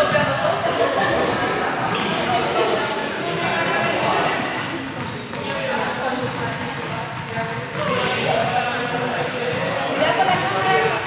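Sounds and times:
people chattering in a hall: 0.0 - 11.0
balls bouncing on floor: 3.4 - 10.9.

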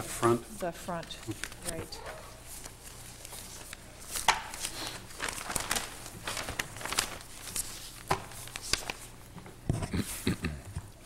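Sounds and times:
papers shuffling: 0.0 - 10.0.

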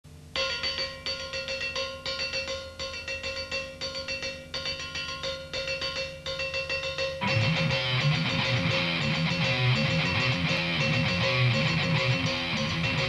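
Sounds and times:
clean electric guitar picking: 0.4 - 13.0.

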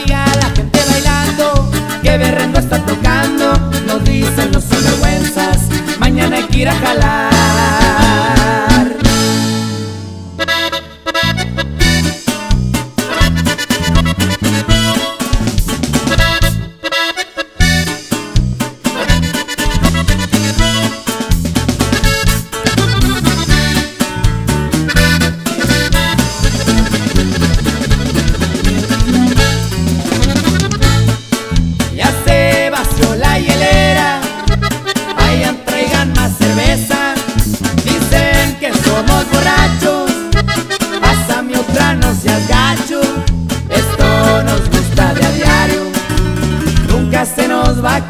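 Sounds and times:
accordion chords: 0.0 - 48.0
band playing instrumental music: 0.0 - 48.0
bass: 0.0 - 48.0
drum kit: 0.0 - 48.0
guitar: 0.0 - 48.0.

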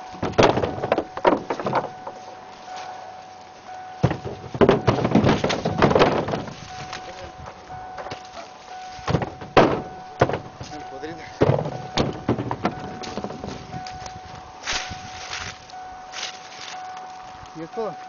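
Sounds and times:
faint steady tone: 0.0 - 18.0
corn thunking into metal truck bed: 0.1 - 2.3, 4.0 - 7.1, 8.0 - 13.7.

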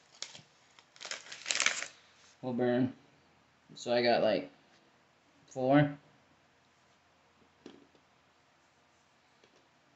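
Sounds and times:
plastic snack bag crinkling: 0.0 - 2.0.

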